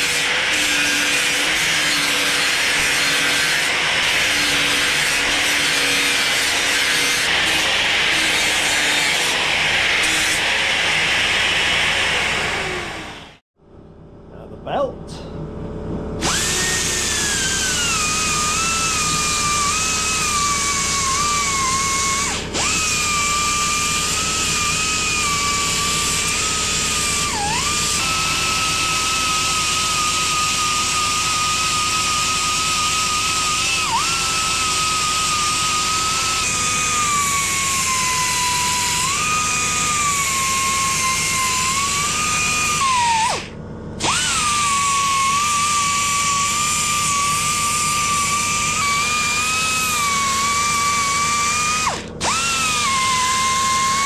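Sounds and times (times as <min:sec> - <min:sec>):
air belt sander whining: 0:00.0 - 0:13.4, 0:14.7 - 0:54.0.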